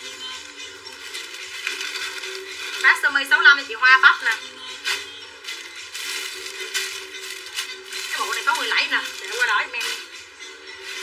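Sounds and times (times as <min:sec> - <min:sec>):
clothing rustling: 0:00.0 - 0:11.0
plastic bag handled: 0:00.0 - 0:11.0
woman speaking: 0:02.8 - 0:04.5, 0:08.1 - 0:10.0.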